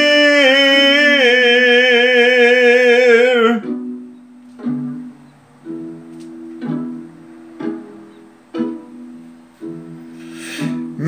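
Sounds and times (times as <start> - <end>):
guitar plucked chords: 0.6 - 10.1.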